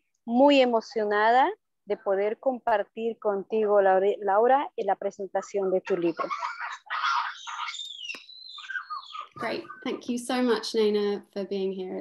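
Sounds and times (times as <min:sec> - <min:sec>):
forest animal calls: 0:05.9 - 0:09.9.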